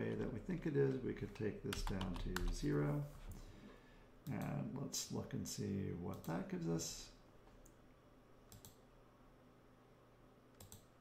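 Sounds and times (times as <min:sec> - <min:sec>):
computer mouse clicks: 0:08.5 - 0:08.8, 0:10.5 - 0:10.9.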